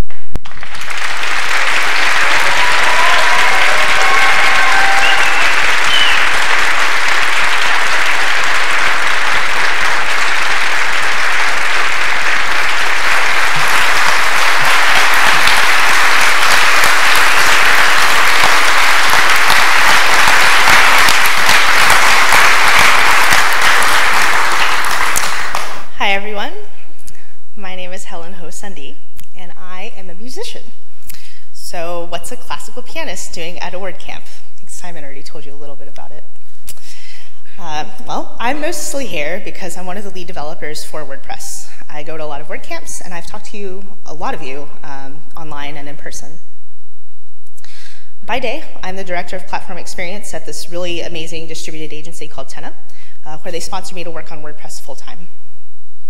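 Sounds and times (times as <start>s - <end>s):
audience applauding: 0.4s - 25.9s
crowd calling out: 1.9s - 21.4s.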